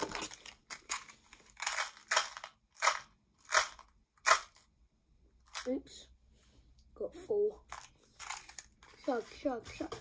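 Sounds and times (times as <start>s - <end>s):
mints rattling in plastic box: 0.0s - 4.6s, 7.7s - 10.0s.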